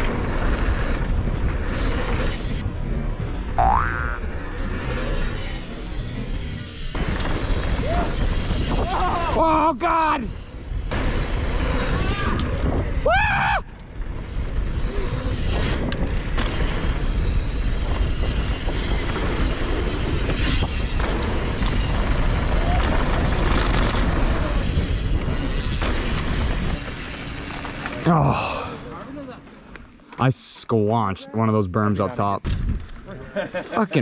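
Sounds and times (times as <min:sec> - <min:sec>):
tyre noise on dirt trail: 0:00.0 - 0:30.3
wind rush: 0:06.2 - 0:27.4
person shouting: 0:08.8 - 0:10.2
bike knocks and rattles: 0:13.8 - 0:28.0.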